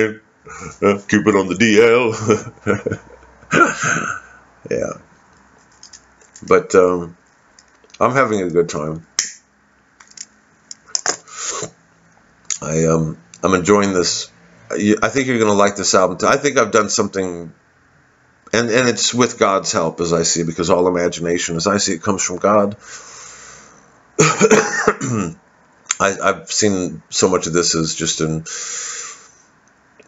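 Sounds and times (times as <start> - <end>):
man coughing: 3.5 - 4.4, 24.2 - 25.4.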